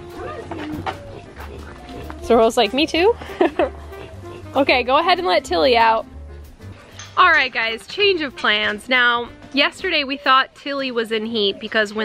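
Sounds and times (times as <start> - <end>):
farmyard animal calls: 0.0 - 4.9
soft background music: 0.0 - 12.0.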